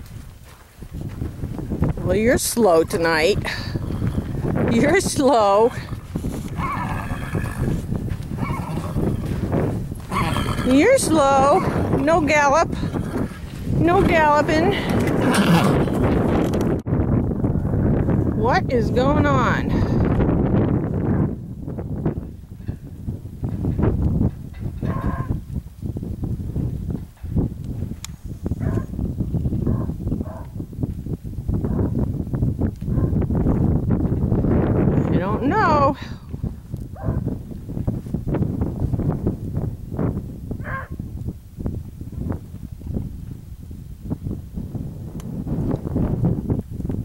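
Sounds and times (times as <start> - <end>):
hoof shuffling: 0.0 - 16.2
hooves thudding on dirt: 0.0 - 16.9, 20.0 - 43.6
wind rumbling on microphone: 0.0 - 47.0
faint horse whinnies: 5.7 - 7.8, 8.4 - 9.3, 10.1 - 10.8.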